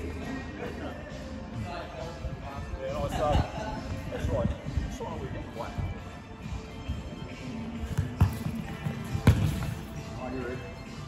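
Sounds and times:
football kicked on wooden floor: 7.9 - 9.8.

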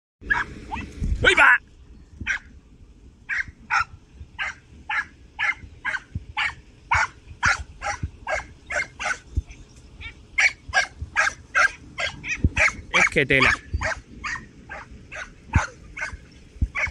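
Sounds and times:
dog yelping barks: 0.2 - 0.9, 2.2 - 2.5, 3.3 - 16.9.

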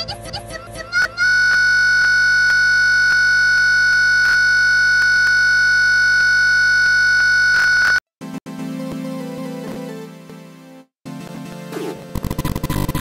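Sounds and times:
high-pitched steady tone: 1.0 - 8.0.

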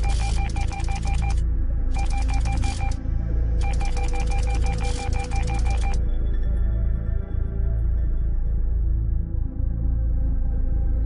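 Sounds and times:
text-typing clicks: 0.0 - 1.4, 2.0 - 3.0, 3.6 - 6.0.

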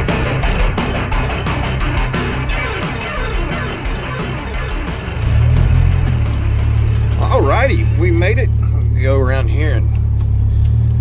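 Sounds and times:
three-wheeler engine droning: 0.0 - 11.0
man talking: 7.2 - 9.9.

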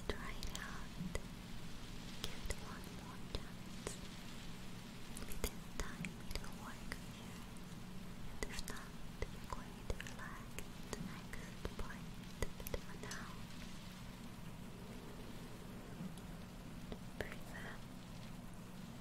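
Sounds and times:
woman whispering: 0.0 - 1.2, 2.2 - 4.0, 5.2 - 7.5, 8.4 - 13.4, 16.9 - 17.9
light clicks and crackles: 0.0 - 1.3, 1.9 - 7.8, 8.4 - 19.0
steady low hum: 0.0 - 19.0.

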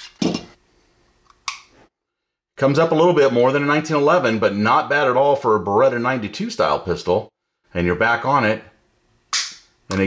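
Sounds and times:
sharp metallic click: 9.3 - 10.0.

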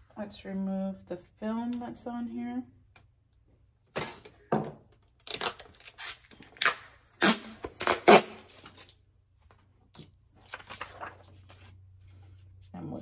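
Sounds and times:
plastic film peeling: 5.2 - 9.0.

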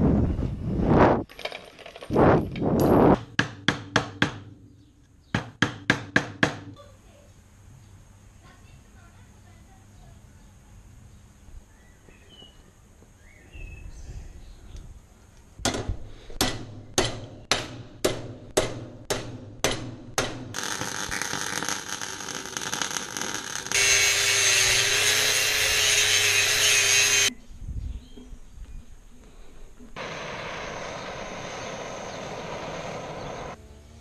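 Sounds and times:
angle grinder cutting steel: 20.6 - 27.3
welding crackle: 20.6 - 27.3.

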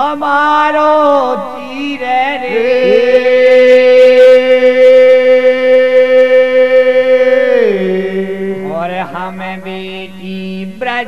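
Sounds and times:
men singing folk song: 0.0 - 11.0.

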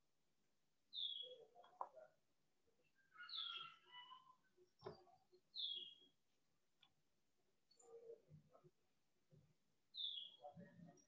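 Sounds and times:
faint bird chirps: 0.9 - 1.7, 2.8 - 6.1, 10.0 - 11.0.

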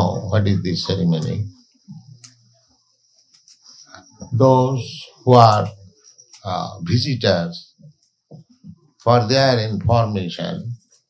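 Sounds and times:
faint clicks: 1.9 - 2.4, 3.2 - 3.8.

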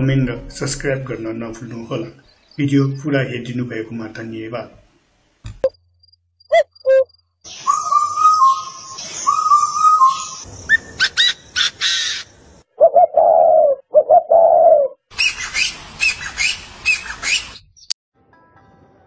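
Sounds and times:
bird calls: 6.4 - 17.9
dove cooing: 6.5 - 7.1, 12.8 - 15.0
whistled bird calls: 6.5 - 12.2, 14.3 - 17.9.

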